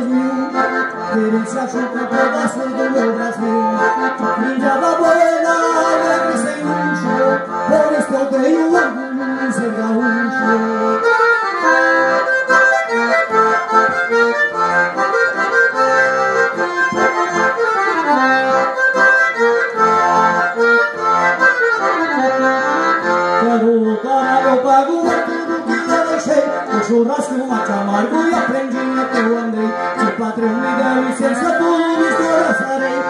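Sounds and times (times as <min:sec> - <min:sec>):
button accordion playing lively tune: 0:00.0 - 0:33.0.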